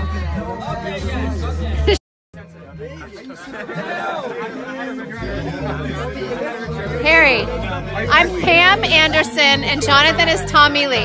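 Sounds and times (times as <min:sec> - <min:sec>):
background music with bass line: 0:00.0 - 0:03.2, 0:05.2 - 0:11.0
people talking: 0:02.6 - 0:11.0.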